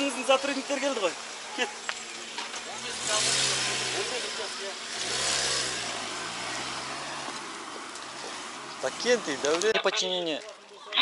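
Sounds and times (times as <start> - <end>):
car engine accelerating: 0.0 - 9.7
tyre and road noise: 0.0 - 11.0.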